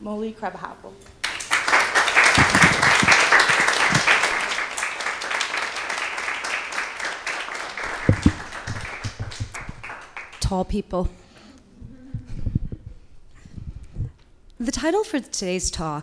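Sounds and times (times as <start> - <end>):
audience applauding: 1.2 - 10.4
low thumps: 2.4 - 3.2, 8.0 - 9.8, 11.8 - 14.2.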